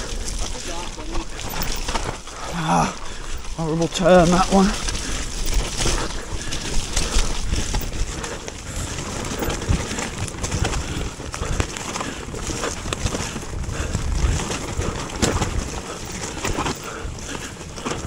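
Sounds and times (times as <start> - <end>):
mountain bike tyre noise: 0.0 - 18.0
wind rumbling on microphone: 0.0 - 18.0
bike knocks and rattles: 3.1 - 18.0.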